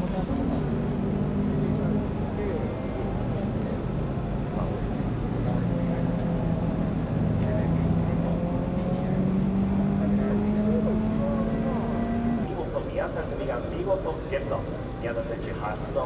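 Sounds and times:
vehicle engine droning: 0.0s - 16.0s
voices: 7.3s - 16.0s.

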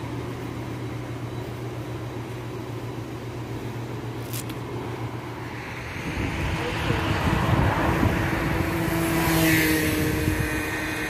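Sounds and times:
car passing close by: 5.4s - 11.0s.

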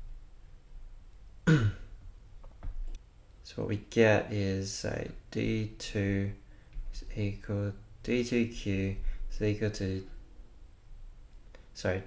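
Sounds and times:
person clearing throat: 1.4s - 1.9s.

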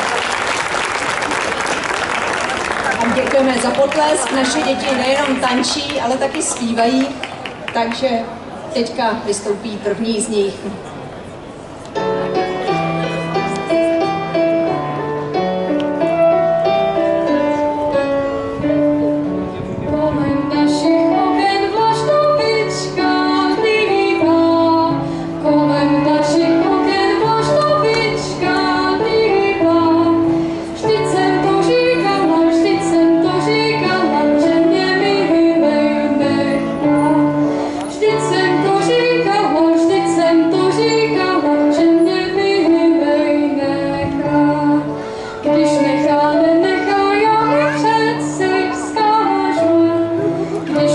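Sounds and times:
electric keyboard: 11.8s - 50.9s
girl singing into a microphone: 17.8s - 50.9s
clarinet: 45.5s - 50.9s.

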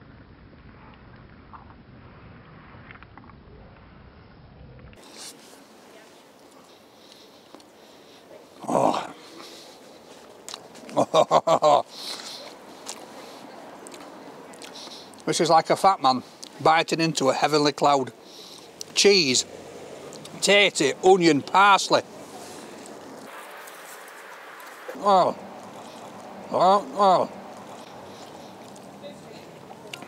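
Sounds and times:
outdoor background noise: 0.0s - 30.0s
man moaning with mouth full: 8.6s - 9.2s, 24.9s - 25.4s, 26.5s - 27.4s.

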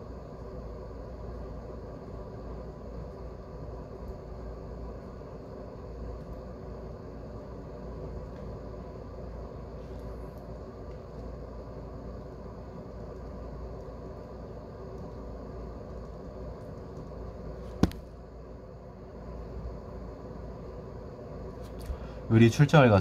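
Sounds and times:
low background hum: 0.0s - 23.0s.

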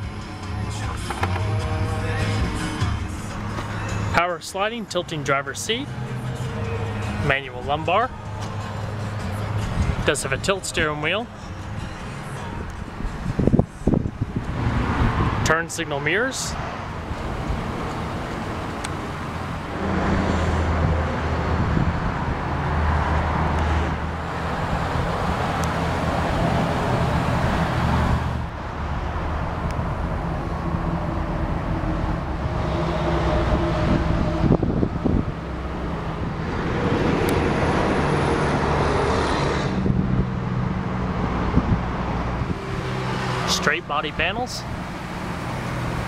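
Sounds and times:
outdoor traffic: 0.0s - 46.0s
wind noise: 12.8s - 15.5s, 16.9s - 43.5s
truck engine idling: 16.8s - 20.0s, 42.4s - 46.0s.

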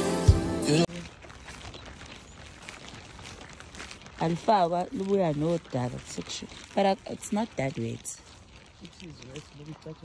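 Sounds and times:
footsteps on stony dirt road: 0.0s - 10.0s.

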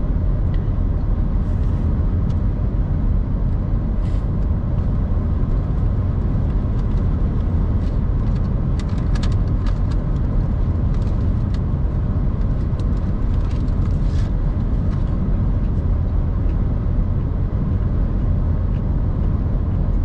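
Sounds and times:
car road and tyre noise: 0.0s - 20.0s.

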